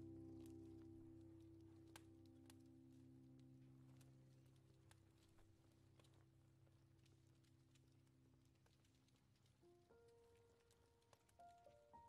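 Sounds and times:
muffled piano chord: 0:00.0 - 0:04.5
fire crackling: 0:00.1 - 0:12.0.

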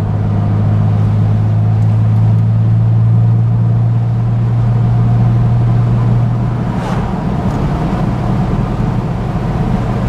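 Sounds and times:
car engine running: 0:00.0 - 0:10.0
tyre and road noise: 0:00.0 - 0:10.0.

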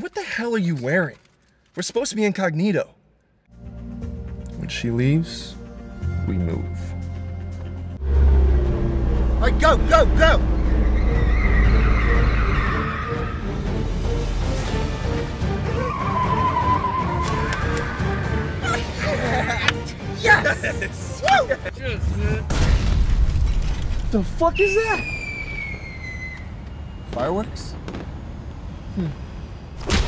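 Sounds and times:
car tires squealing: 0:09.9 - 0:13.5, 0:15.7 - 0:18.3
high whistle gliding down: 0:24.5 - 0:27.0.

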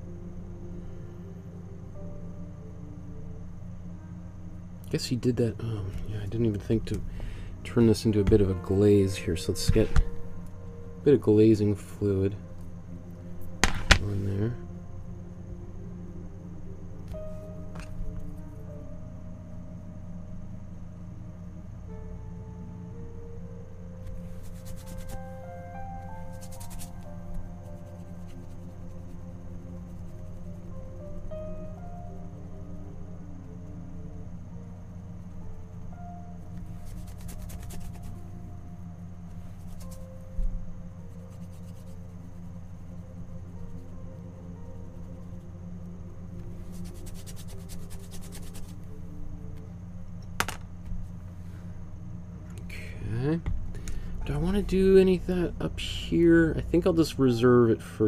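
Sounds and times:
soft background music: 0:00.0 - 0:58.0
steady low hum: 0:00.0 - 0:58.0
paintbrush scratching on canvas: 0:24.3 - 0:25.2, 0:26.2 - 0:27.0, 0:36.7 - 0:38.2, 0:41.1 - 0:42.1, 0:46.6 - 0:48.8.

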